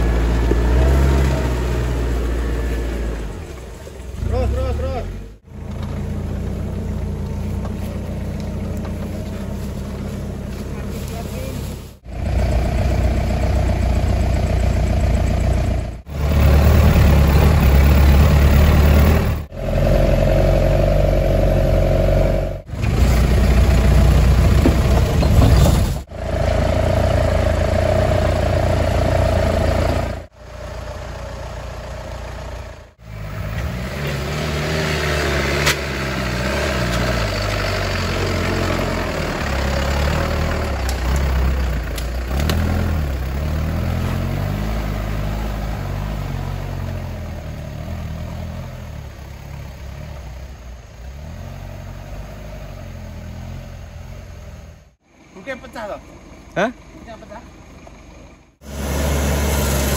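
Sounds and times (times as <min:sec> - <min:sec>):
off-road vehicle engine revving: 0:00.0 - 0:59.9.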